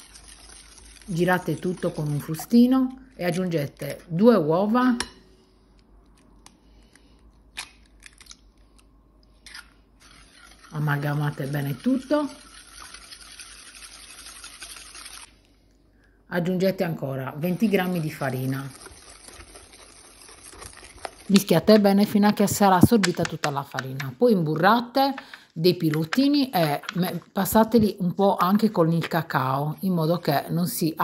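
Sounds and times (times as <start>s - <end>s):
stirring batter in glass bowl: 0.0s - 4.1s, 9.5s - 15.4s, 17.4s - 27.9s.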